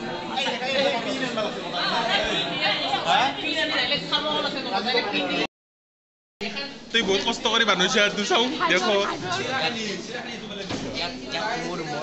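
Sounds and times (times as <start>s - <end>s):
young people talking: 0.0s - 5.5s, 6.4s - 12.0s.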